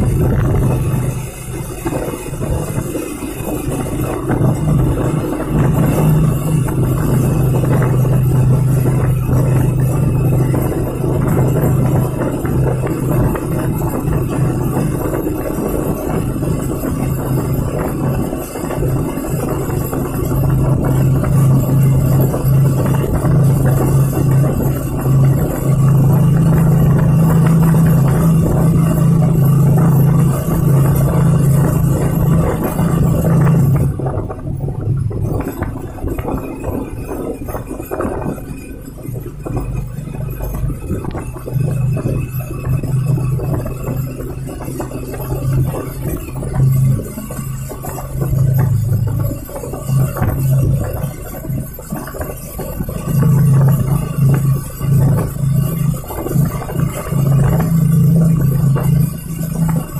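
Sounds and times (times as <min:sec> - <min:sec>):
low drone: 0:00.0 - 0:59.9
vehicle roar in tunnel: 0:00.0 - 0:59.9.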